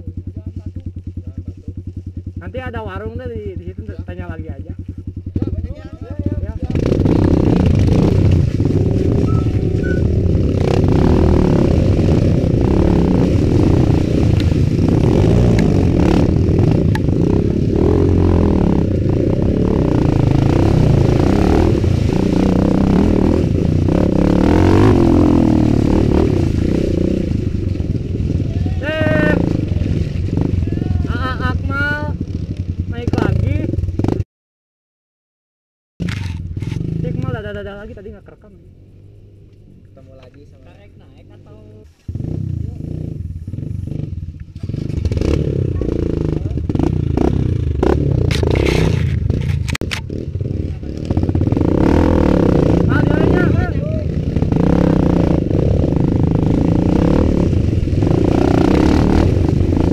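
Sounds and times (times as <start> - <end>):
dirt bike engine running: 0.0 - 34.2, 36.0 - 59.9
voices calling out: 28.3 - 32.1.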